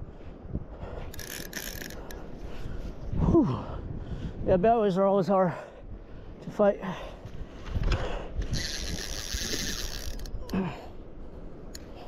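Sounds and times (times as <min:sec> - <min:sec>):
fishing reel clicking buzz: 0:01.1 - 0:02.2, 0:08.5 - 0:10.6.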